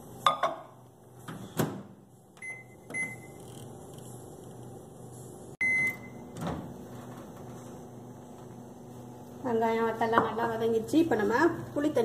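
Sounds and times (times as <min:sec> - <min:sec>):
microwave low hum: 0:00.0 - 0:12.0
microwave beeps: 0:02.4 - 0:03.4, 0:05.6 - 0:06.4.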